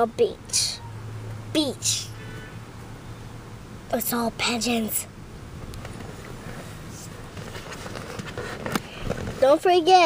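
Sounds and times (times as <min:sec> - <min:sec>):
faint clicks and rustles: 0:05.6 - 0:09.6.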